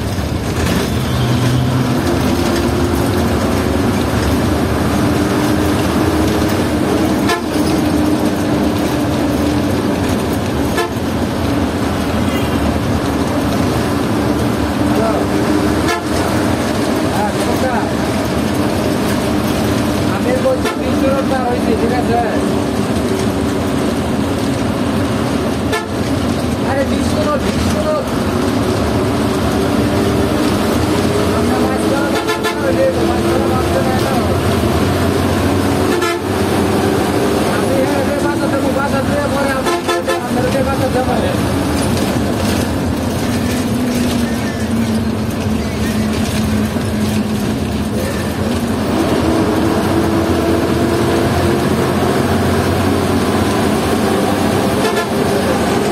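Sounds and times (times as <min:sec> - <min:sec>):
bus engine: 0:00.0 - 0:55.9
road noise: 0:00.0 - 0:55.9
horns honking: 0:00.7 - 0:02.6, 0:07.0 - 0:08.4, 0:10.6 - 0:11.5, 0:12.1 - 0:12.9, 0:15.7 - 0:17.1, 0:20.3 - 0:21.4, 0:25.6 - 0:26.2, 0:31.6 - 0:34.0, 0:35.6 - 0:36.8, 0:39.3 - 0:41.0, 0:53.9 - 0:55.9.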